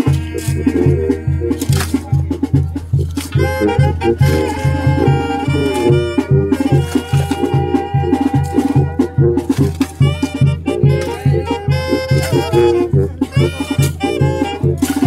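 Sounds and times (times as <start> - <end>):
latin band with brass and percussion: 0.0 - 15.0.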